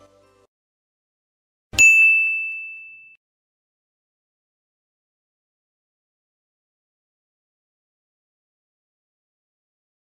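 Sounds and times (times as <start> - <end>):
bright bell-like ding: 1.8 - 3.2.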